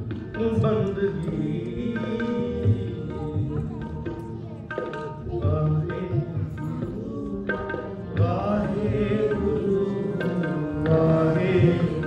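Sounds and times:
harmonium chords: 0.0 - 12.0
tabla strokes: 0.0 - 12.0
person singing: 0.4 - 12.0.

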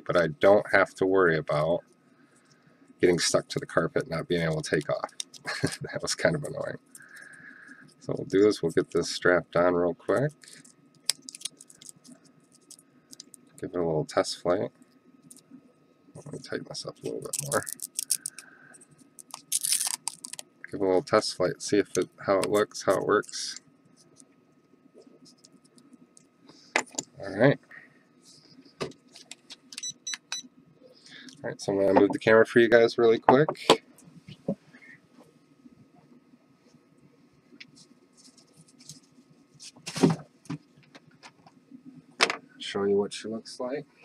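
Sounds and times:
hook-and-loop strap crackling: 10.4 - 13.6, 17.2 - 18.5, 19.1 - 20.5
hook-and-loop strap ripping: 19.3 - 20.4.

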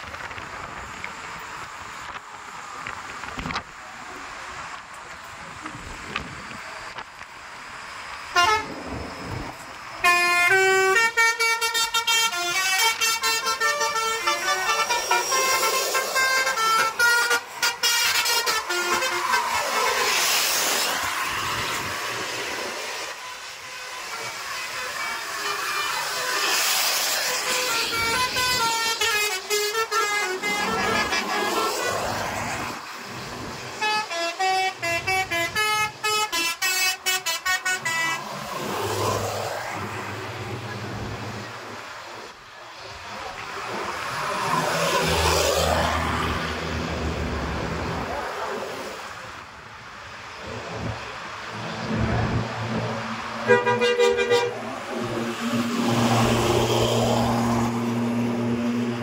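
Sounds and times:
bus passing close: 0.0 - 59.0
bus horns playing melodic tunes: 8.3 - 9.2, 10.0 - 20.2, 21.4 - 26.6, 27.2 - 32.7, 33.7 - 38.4, 44.7 - 47.0, 53.2 - 56.6.

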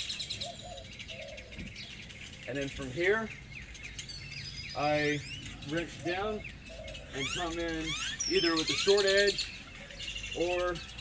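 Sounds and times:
birds chirping in trills: 0.0 - 11.0
short low bird calls: 0.0 - 11.0.

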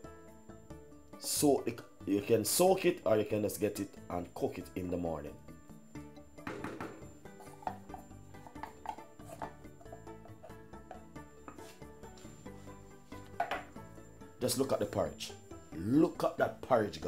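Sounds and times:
wooden spoon scraping metal pot: 7.3 - 12.4.

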